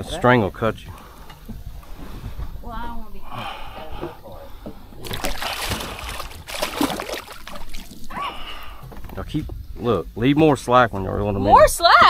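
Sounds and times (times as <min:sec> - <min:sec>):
fish thrashing and splashing: 0:04.5 - 0:09.1.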